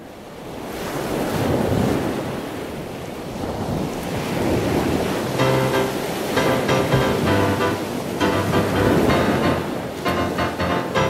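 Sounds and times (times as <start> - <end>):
ocean surf washing onto beach: 0.5 - 11.0
music with repeated chords: 5.4 - 11.0.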